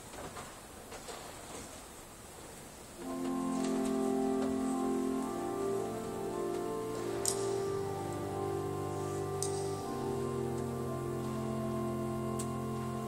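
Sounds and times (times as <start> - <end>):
room noise with small clicks: 0.0 - 13.0
church organ chords: 3.0 - 13.0.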